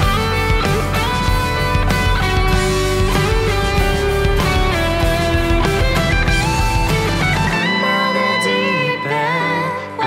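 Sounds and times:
bass: 0:00.0 - 0:10.0
electric guitar solo: 0:00.0 - 0:10.0
piano: 0:00.0 - 0:10.0.

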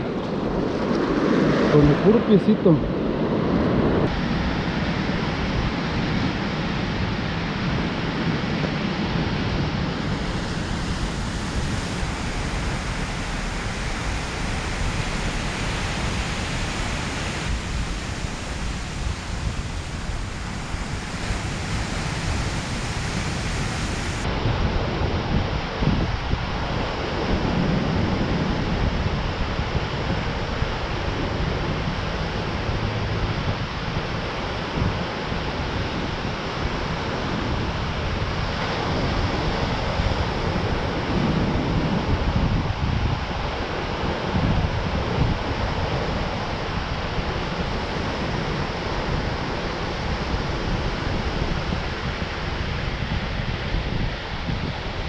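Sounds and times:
ocean surf breaking: 0:00.0 - 0:55.0
wind buffeting microphone: 0:00.0 - 0:55.0.

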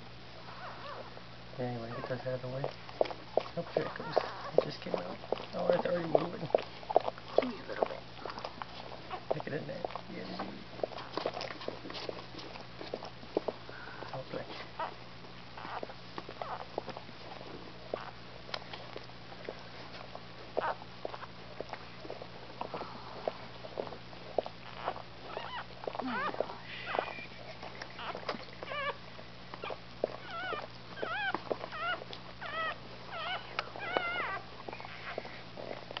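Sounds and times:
dog licking puppy: 0:00.5 - 0:36.0
puppy squeaking: 0:00.6 - 0:01.1, 0:01.8 - 0:02.3, 0:03.0 - 0:11.8, 0:14.8 - 0:15.0, 0:15.6 - 0:16.8, 0:17.9 - 0:18.2, 0:20.6 - 0:22.8, 0:23.8 - 0:29.0, 0:29.6 - 0:35.9.

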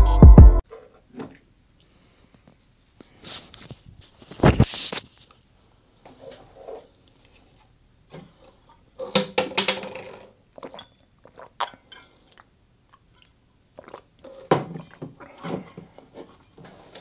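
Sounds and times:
person gulping water: 0:10.5 - 0:15.4.

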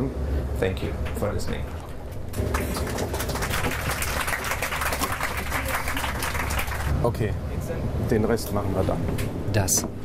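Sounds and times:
low cabin hum: 0:00.1 - 0:10.0
passengers applauding: 0:02.3 - 0:07.0.

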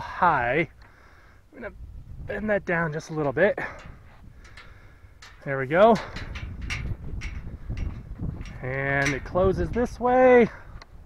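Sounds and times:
wind rumble on microphone: 0:01.5 - 0:11.0
metal gate swinging on hinges: 0:02.9 - 0:10.6.

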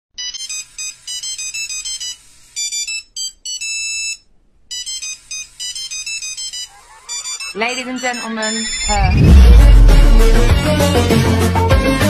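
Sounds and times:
electronic beeping jingle: 0:04.8 - 0:10.6.

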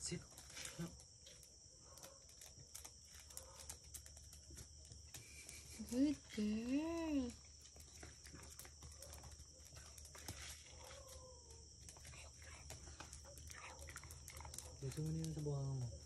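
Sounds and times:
crickets chirring: 0:00.0 - 0:16.0.

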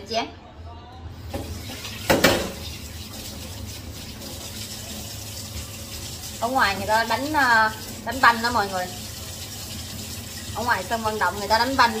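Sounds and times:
tap running into sink: 0:01.3 - 0:03.4
dishes being washed: 0:01.3 - 0:12.0.

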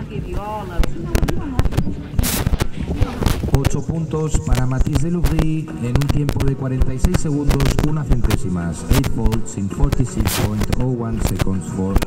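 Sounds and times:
faint voices: 0:00.0 - 0:12.0
short rushing burst: 0:02.2 - 0:03.5.

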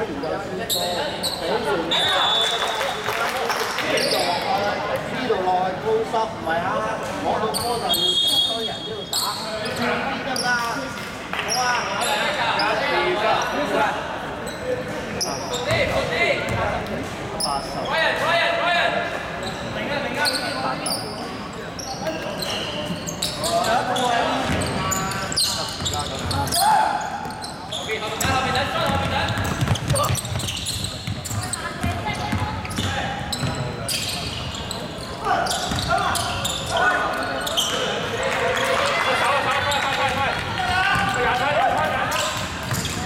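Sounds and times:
sneakers squeaking: 0:00.0 - 0:03.0, 0:03.6 - 0:05.2, 0:06.5 - 0:13.8, 0:14.4 - 0:18.2, 0:19.3 - 0:43.0
players calling out: 0:21.8 - 0:43.0
basketball bouncing on wooden court: 0:28.2 - 0:33.7, 0:35.6 - 0:36.0, 0:42.4 - 0:43.0.

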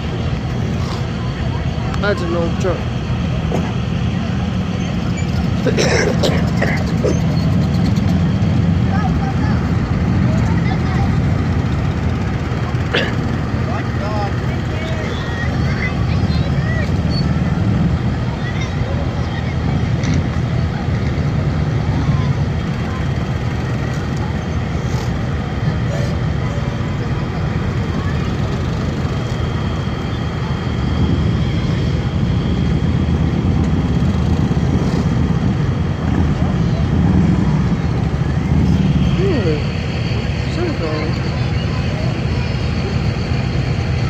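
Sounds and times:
vehicle engines rumbling: 0:00.0 - 0:44.0.

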